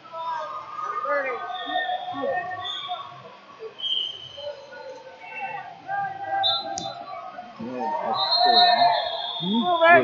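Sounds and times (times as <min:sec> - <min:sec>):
voices calling out in gym hall: 0:00.0 - 0:10.0.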